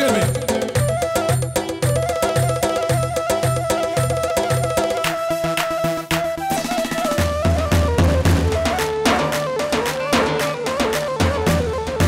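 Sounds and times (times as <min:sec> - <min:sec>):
driving drum beat: 0:00.0 - 0:12.0
electronic keyboard melody: 0:00.0 - 0:12.0.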